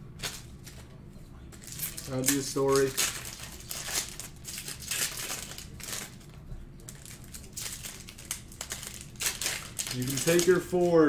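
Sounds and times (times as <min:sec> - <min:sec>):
wrappers crinkling: 0:00.2 - 0:11.0.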